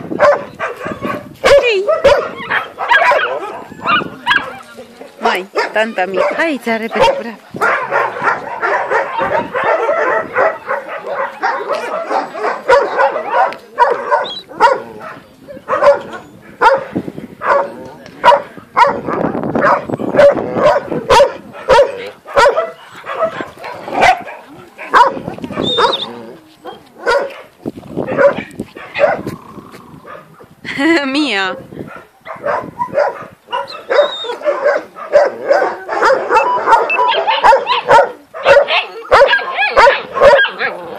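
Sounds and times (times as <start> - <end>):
dogs barking: 0.0 - 29.4, 30.0 - 30.5, 31.6 - 40.9.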